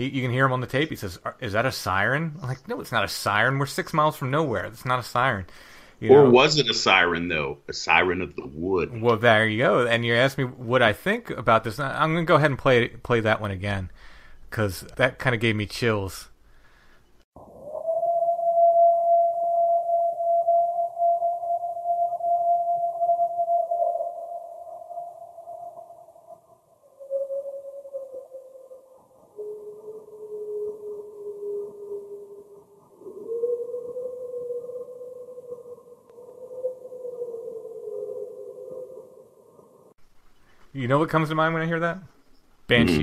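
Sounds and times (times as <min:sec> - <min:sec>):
muffled siren-like howl: 0:17.4 - 0:24.6, 0:27.0 - 0:39.1.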